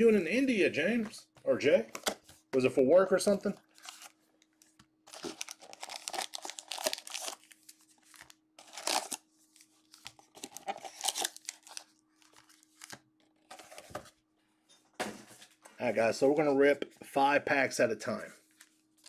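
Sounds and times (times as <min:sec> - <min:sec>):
card pack wrappers crinkling: 0:03.3 - 0:14.0.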